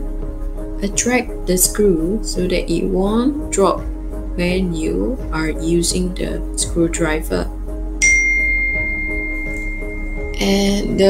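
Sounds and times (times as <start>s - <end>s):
soft background music: 0.0s - 11.0s
bright bell chime: 8.0s - 10.8s.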